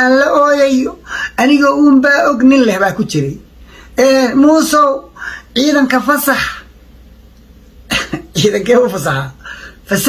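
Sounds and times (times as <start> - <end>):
man speaking: 0.0 - 6.8, 8.0 - 10.0.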